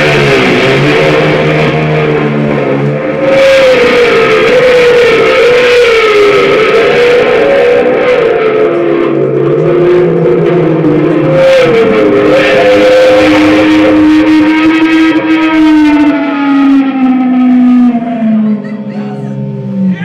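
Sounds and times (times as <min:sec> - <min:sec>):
bass and drums: 0:00.0 - 0:06.8
distorted electric lead guitar: 0:00.0 - 0:20.0.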